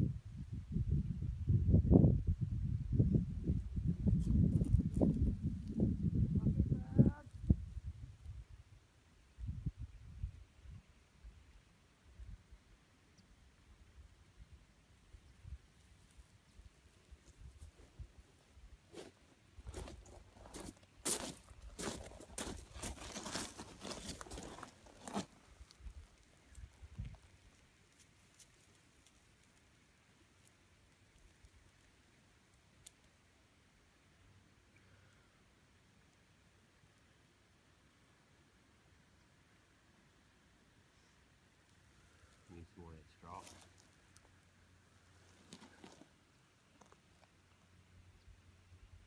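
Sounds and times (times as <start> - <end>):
footsteps crunching on gravel: 18.9 - 25.8, 43.3 - 43.9, 45.2 - 46.1.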